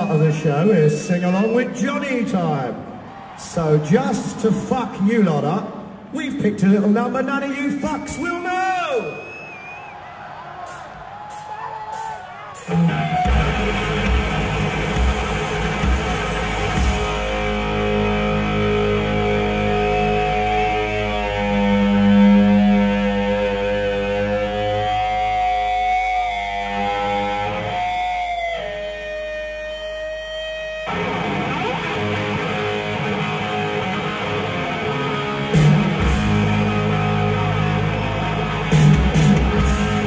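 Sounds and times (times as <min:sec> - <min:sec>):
distorted electric guitar: 0:12.6 - 0:40.0
bass guitar: 0:12.7 - 0:40.0.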